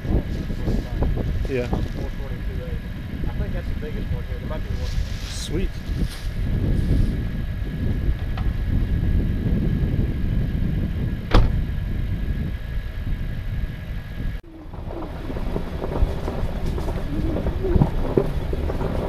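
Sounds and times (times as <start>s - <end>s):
truck driving over rough trail: 0.0s - 19.0s.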